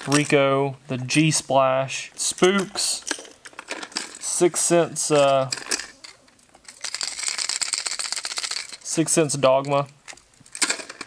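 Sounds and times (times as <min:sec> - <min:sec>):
plastic lures clicking and rattling: 0:02.4 - 0:04.4, 0:05.0 - 0:11.0.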